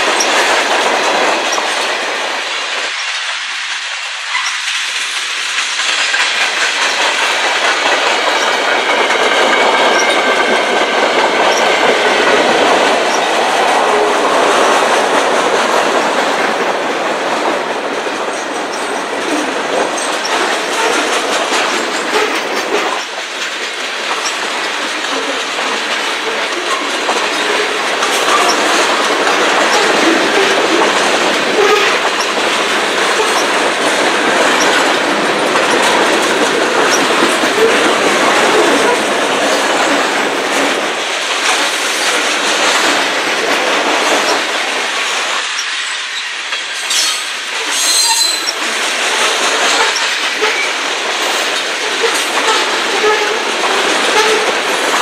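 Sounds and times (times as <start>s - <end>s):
train wheels rumbling on rails: 0.0s - 55.0s
high wheel squeal: 45.6s - 48.6s.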